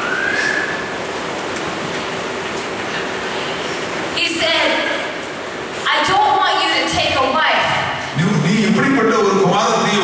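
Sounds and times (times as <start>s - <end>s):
faint thin whistling tone: 0.0s - 0.9s
rushing noise in a hall: 0.0s - 10.0s.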